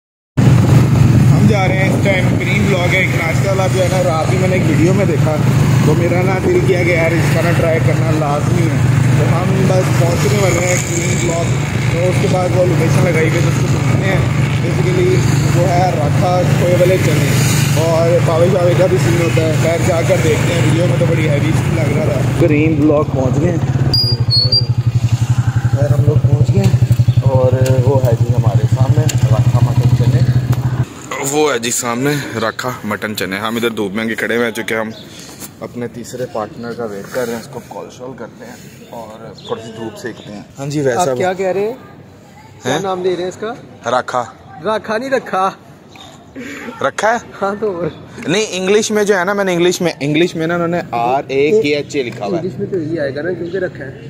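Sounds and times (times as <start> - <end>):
motorcycle engine rumble: 0.4 - 31.0
motorcycle engine idling: 23.0 - 30.8.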